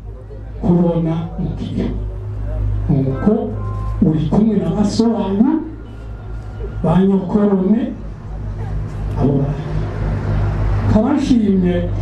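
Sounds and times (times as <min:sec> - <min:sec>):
steady low hum: 0:00.0 - 0:12.0
man speaking: 0:00.2 - 0:05.9, 0:06.6 - 0:10.0.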